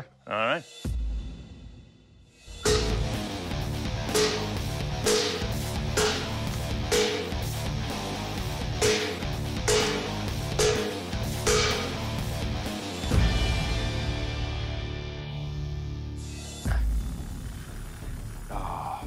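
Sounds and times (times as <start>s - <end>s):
heavy metal guitar music: 2.6s - 16.3s.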